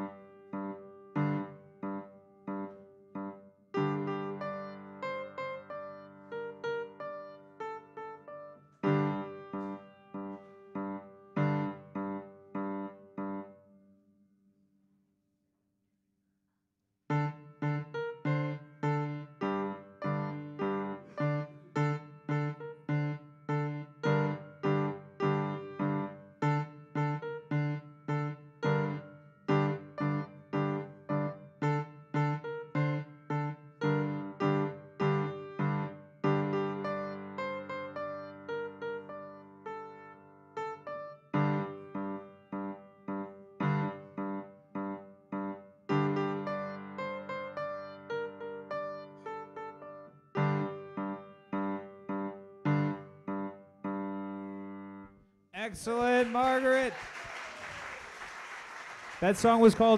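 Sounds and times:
digital piano playing: 0:00.0 - 0:13.5, 0:17.1 - 0:55.0.

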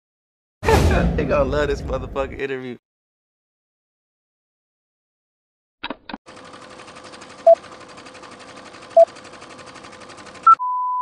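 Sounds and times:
film projector clatter: 0:06.3 - 0:10.5.

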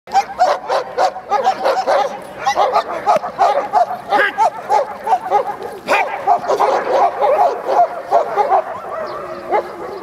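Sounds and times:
dog barking excitedly: 0:00.1 - 0:10.0.

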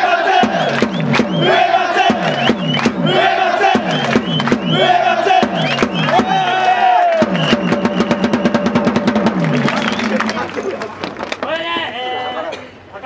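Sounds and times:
crowd chanting in unison: 0:00.0 - 0:07.2
marching drum beats: 0:00.0 - 0:11.3
fast drum roll: 0:00.4 - 0:11.0.

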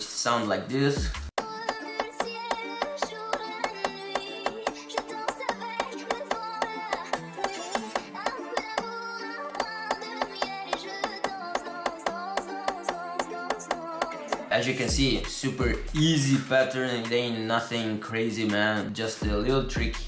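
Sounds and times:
person singing: 0:01.4 - 0:14.8.

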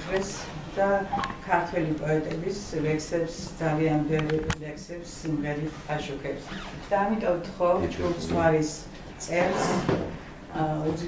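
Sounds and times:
woman speaking: 0:00.0 - 0:11.0.

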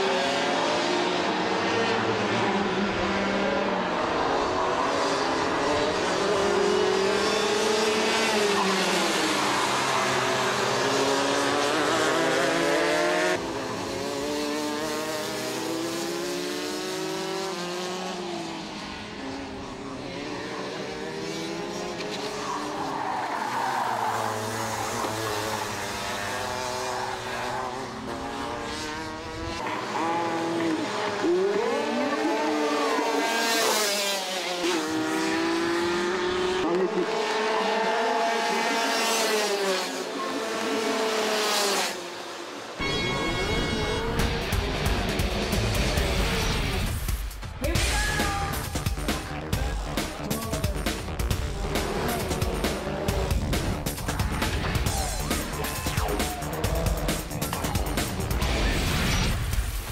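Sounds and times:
kart engines revving: 0:00.0 - 0:59.9.

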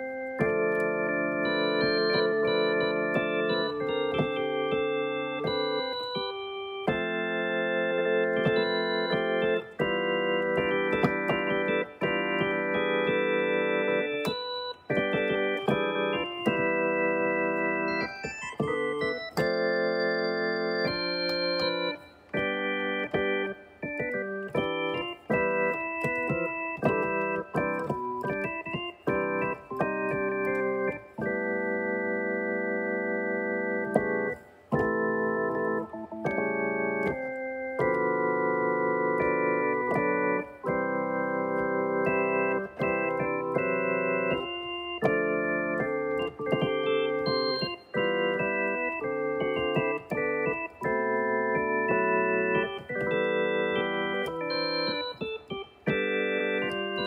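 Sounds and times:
electronic keyboard chords: 0:00.0 - 0:57.0.

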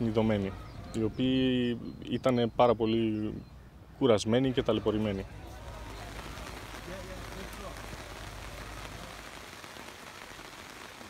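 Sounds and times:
faint distant voices: 0:00.0 - 0:10.6
rain on tents: 0:04.6 - 0:11.0.

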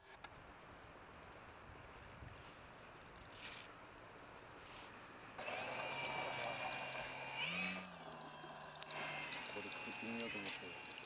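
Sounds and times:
model airplane motor whining: 0:05.4 - 0:11.0.

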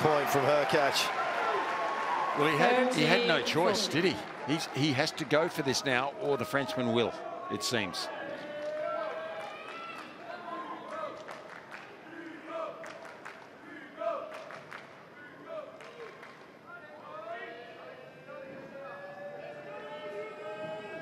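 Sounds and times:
crowd voices reacting: 0:00.0 - 0:10.8.

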